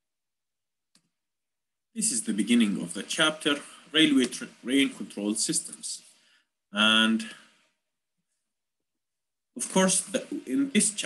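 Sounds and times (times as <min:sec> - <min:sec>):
man's voice: 0:06.8 - 0:07.4, 0:09.6 - 0:11.0.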